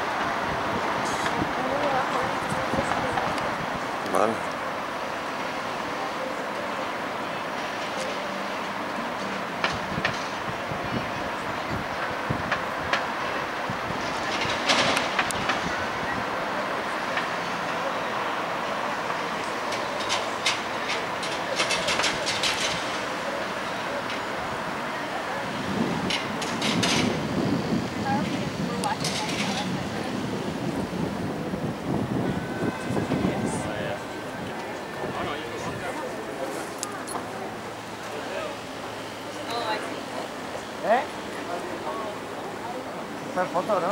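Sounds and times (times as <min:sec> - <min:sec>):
distant voices: 0:00.0 - 0:43.9
traffic: 0:00.0 - 0:43.9.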